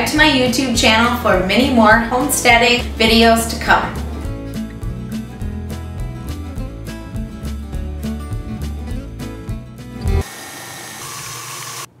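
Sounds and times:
guitar tune: 0.0 - 10.2
stand mixer motor running: 10.2 - 12.0.

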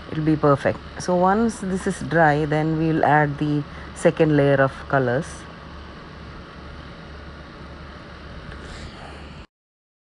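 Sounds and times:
steady background hum: 0.0 - 9.5.

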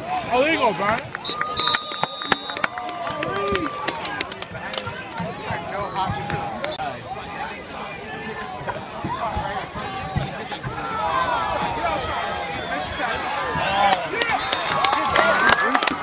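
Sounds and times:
spectators yelling: 0.0 - 16.0
sharp claps: 0.9 - 5.3, 13.8 - 16.0.

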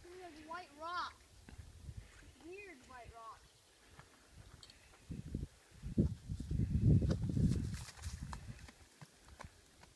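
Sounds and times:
footsteps crunching on dirt: 3.3 - 5.2, 5.9 - 9.9.

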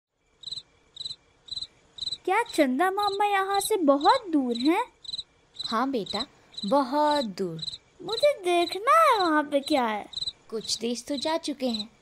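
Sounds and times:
cricket chirping: 0.3 - 12.0.

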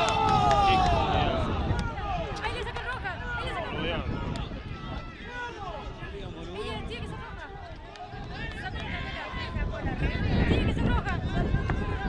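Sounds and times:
low rumble of wind: 0.0 - 12.0
men shouting and cheering: 0.0 - 12.0.

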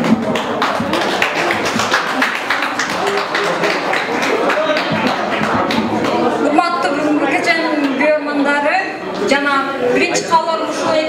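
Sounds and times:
people clapping: 0.0 - 8.0.

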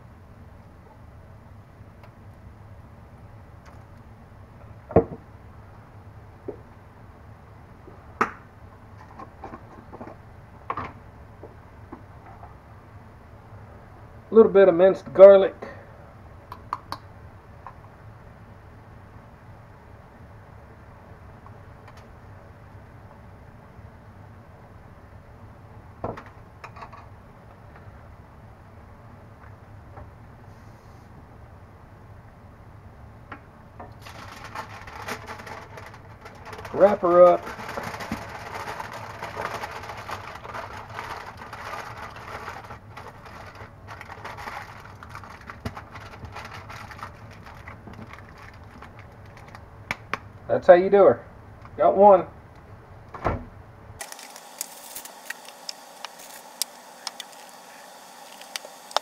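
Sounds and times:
low room hiss: 0.0 - 59.0
aluminium foil crinkling: 34.0 - 49.6, 54.0 - 59.0.

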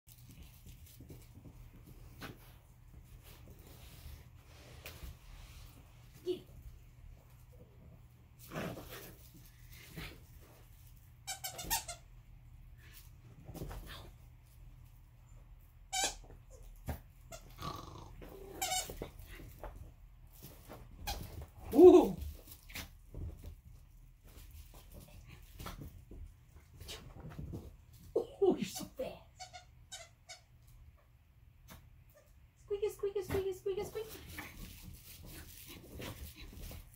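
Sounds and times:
dog play noises: 0.1 - 36.9
squeaky toy squeaks: 11.2 - 12.1, 15.9 - 16.4, 29.4 - 30.5.

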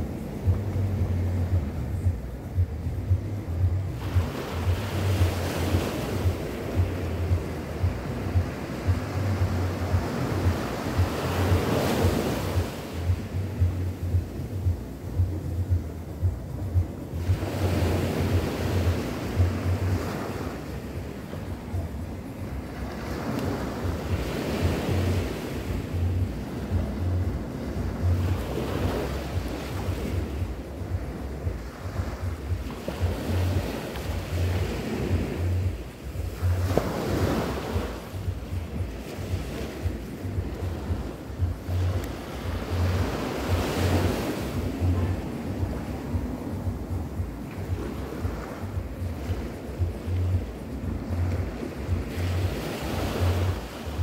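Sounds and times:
wind buffeting microphone: 0.0 - 54.0
small waves breaking on beach: 3.6 - 54.0.

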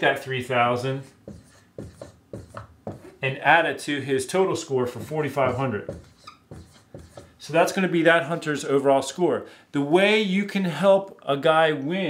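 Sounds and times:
marker writing on whiteboard: 1.0 - 3.2, 4.6 - 7.8.

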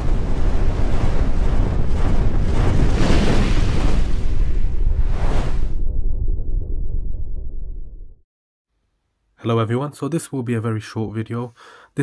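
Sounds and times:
whooshing noise: 0.8 - 8.0.

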